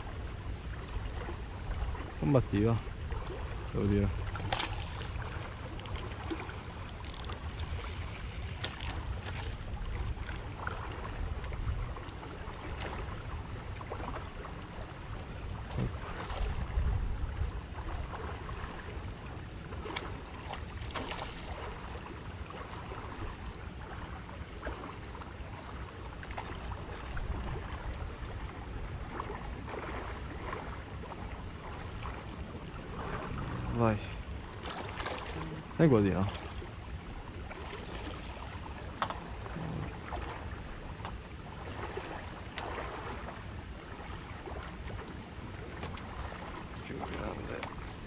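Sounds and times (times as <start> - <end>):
wind rumbling on microphone: 0.0 - 48.0.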